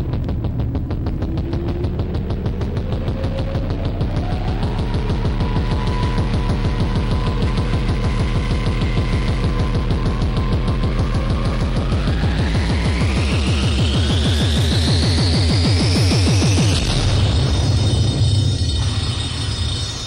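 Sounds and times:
hardcore techno kick drum: 0.0 - 18.9
low rumble: 0.0 - 20.0.

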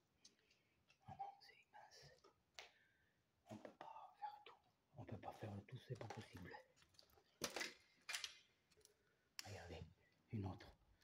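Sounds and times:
man half-whispering: 1.0 - 2.3, 3.5 - 6.7, 9.4 - 10.8.

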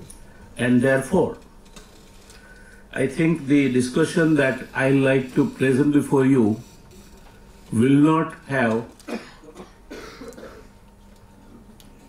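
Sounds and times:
person coughing: 9.0 - 10.8.

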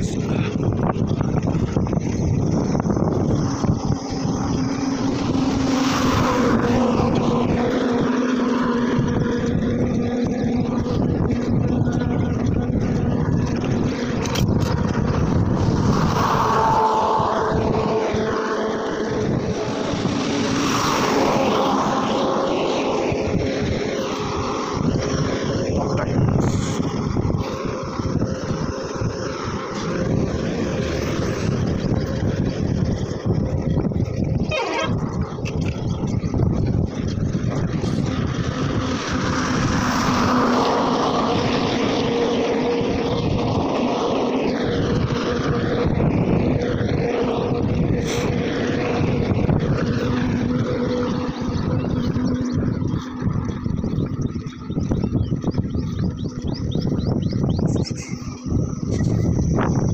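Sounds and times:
highway traffic with trucks: 0.0 - 59.9
steady low drone: 0.0 - 59.9
wind rushing over microphone: 0.0 - 59.9.

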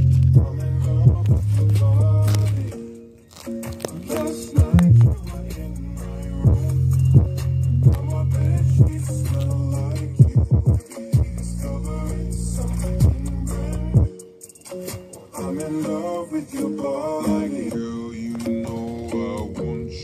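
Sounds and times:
bass-heavy music from speaker: 0.0 - 20.0.

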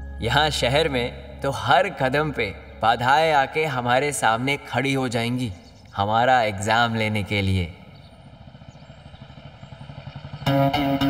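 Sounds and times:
distant engine rumble: 0.0 - 11.0.

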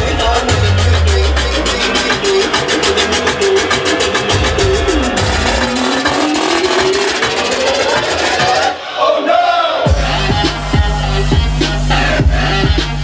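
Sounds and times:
fast hi-hat roll: 0.0 - 8.7
loud club dance music: 0.0 - 13.0
rising pitch build-up tone: 0.2 - 8.8.

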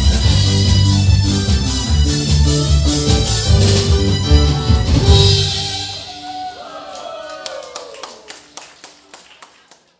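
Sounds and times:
crowd hand clapping: 6.6 - 9.9.

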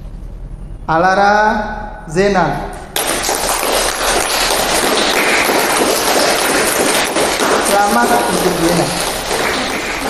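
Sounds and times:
people applauding: 2.9 - 10.0.

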